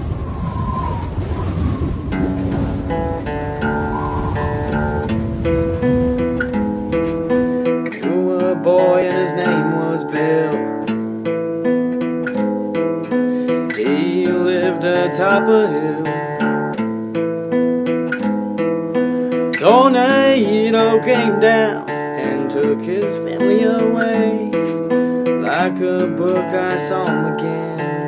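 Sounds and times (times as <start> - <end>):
low rumbling noise: 0.0 - 7.7
acoustic guitar picking: 2.1 - 28.0
man singing: 7.8 - 10.9, 13.5 - 16.4, 19.5 - 28.0.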